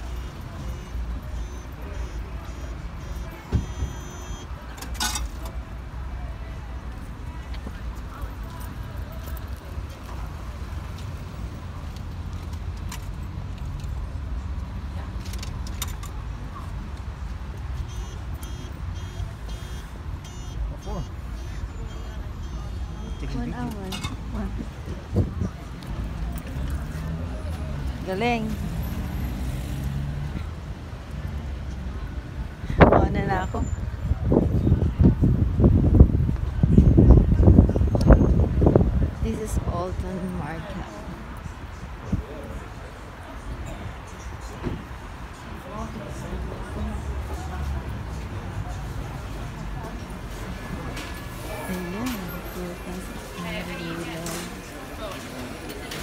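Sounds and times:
faint electronic beeping: 0:00.0 - 0:04.5, 0:17.8 - 0:23.6
traffic rumble: 0:00.0 - 0:56.0.

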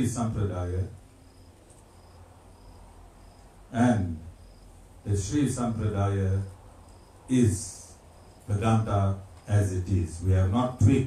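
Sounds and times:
low steady hum: 0:00.0 - 0:11.0
insect chirping: 0:00.8 - 0:08.9.

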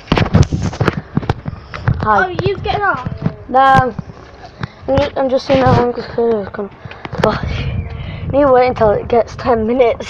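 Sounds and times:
handling noise on microphone: 0:00.0 - 0:07.4.

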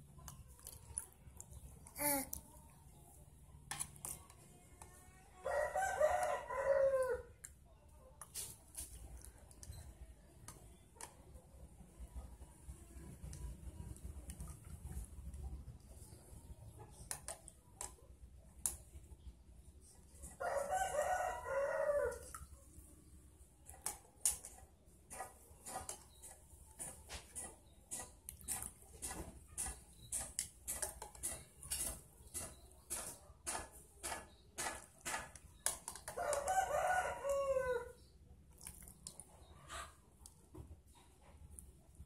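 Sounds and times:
rooster crowing: 0:05.4 - 0:07.3, 0:20.4 - 0:22.2, 0:36.2 - 0:38.0.

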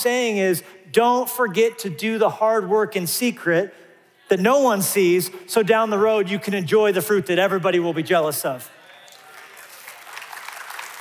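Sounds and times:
crowd applauding: 0:09.0 - 0:11.0.

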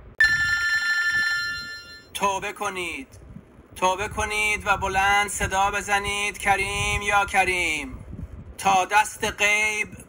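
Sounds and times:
bell-like ring: 0:00.2 - 0:02.2.

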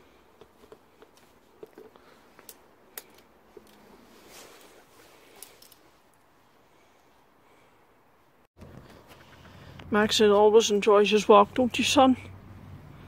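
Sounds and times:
padded coat rustling: 0:03.5 - 0:07.2.

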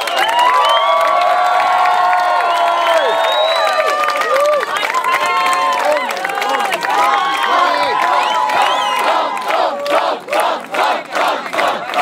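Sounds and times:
crowd cheering: 0:00.0 - 0:12.0
hands clapping: 0:00.0 - 0:12.0.

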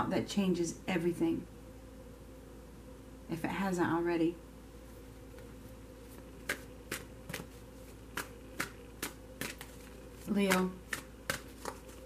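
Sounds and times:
cards being shuffled: 0:05.3 - 0:12.0.

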